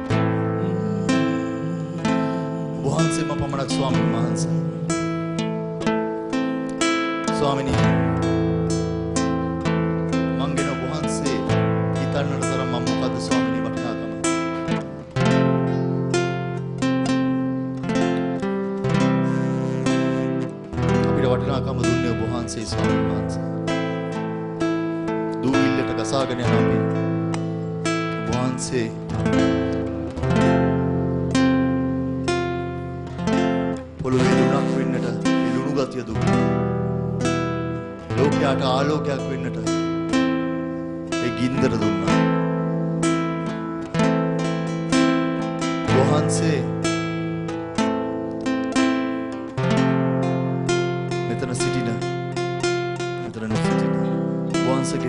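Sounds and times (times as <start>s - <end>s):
strummed acoustic guitar: 0.0s - 55.0s
man's voice over microphone: 2.8s - 4.6s, 7.3s - 8.0s, 10.4s - 14.2s, 21.0s - 23.4s, 25.4s - 26.9s, 28.3s - 29.0s, 34.0s - 36.4s, 38.2s - 39.8s, 41.2s - 42.1s, 45.9s - 46.8s, 51.3s - 52.1s, 53.2s - 53.8s, 54.6s - 55.0s.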